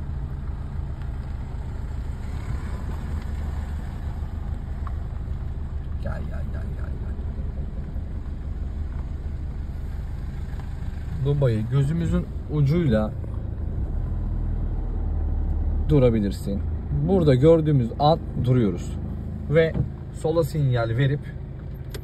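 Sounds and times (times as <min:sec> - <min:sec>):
car engine idling: 0:00.0 - 0:22.0.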